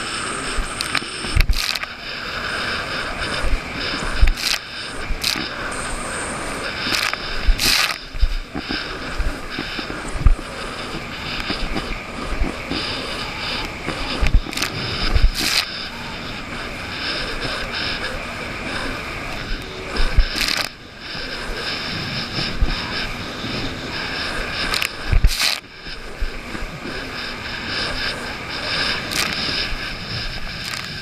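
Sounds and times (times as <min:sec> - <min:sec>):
jet ski engine drone: 0:00.0 - 0:31.0
rushing water: 0:00.0 - 0:31.0.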